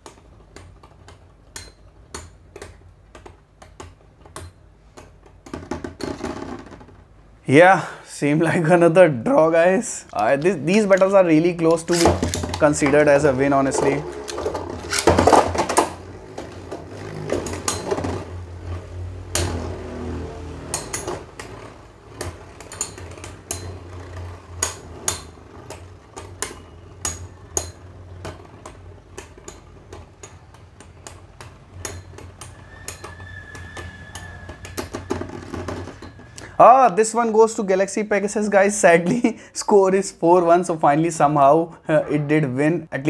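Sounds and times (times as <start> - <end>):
metal tops clacking together: 10.1 - 16.5
spinning tops whirring: 10.1 - 36.5.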